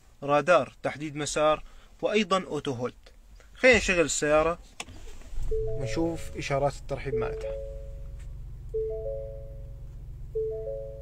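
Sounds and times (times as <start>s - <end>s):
low steady hum: 0.0s - 11.0s
dashboard chime: 5.5s - 8.2s, 8.8s - 9.8s, 10.4s - 11.0s.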